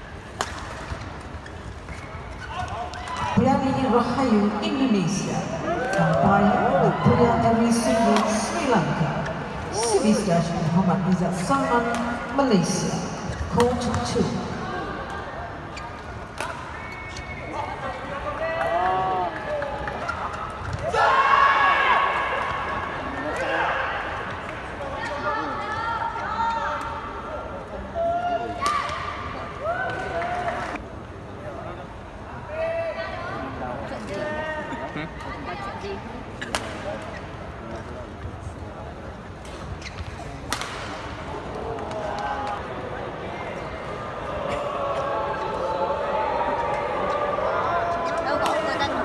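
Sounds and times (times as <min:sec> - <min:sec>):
steady arena hum: 0:00.0 - 0:49.0
shoes squeaking on court: 0:01.0 - 0:02.8, 0:16.8 - 0:17.5, 0:39.6 - 0:40.4.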